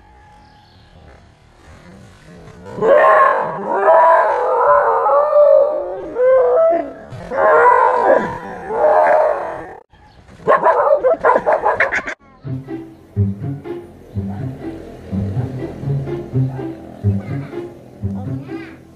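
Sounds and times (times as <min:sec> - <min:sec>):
dog barking: 0:02.8 - 0:04.7, 0:10.4 - 0:12.1, 0:16.4 - 0:16.9
dog howling: 0:02.8 - 0:09.8.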